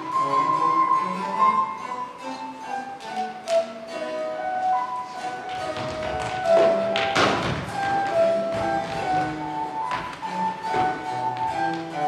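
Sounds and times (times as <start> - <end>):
instrumental music with held notes: 0.0 - 12.0
feet running on wooden stage: 5.2 - 12.0.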